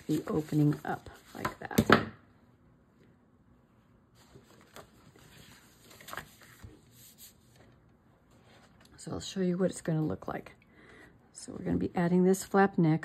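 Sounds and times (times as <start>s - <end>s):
soft paper rustles: 0.0s - 1.6s, 4.1s - 9.1s.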